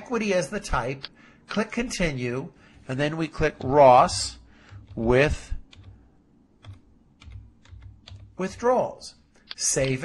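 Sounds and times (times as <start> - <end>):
computer keyboard typing: 3.5 - 6.0, 6.6 - 8.7.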